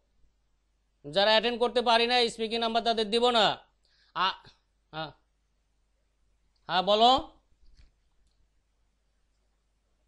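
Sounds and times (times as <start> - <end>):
person speaking: 1.0 - 5.3, 6.5 - 8.0.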